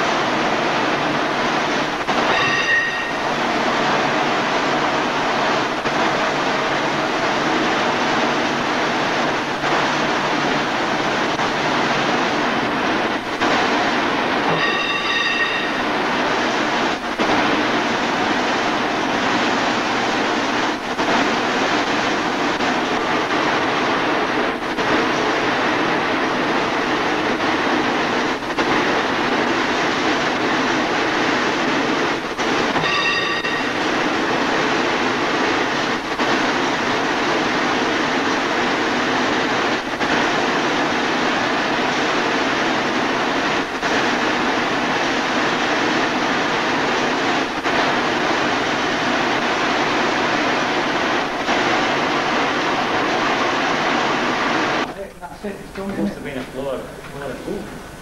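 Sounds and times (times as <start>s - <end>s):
high-pitched whine: 0.0s - 58.0s.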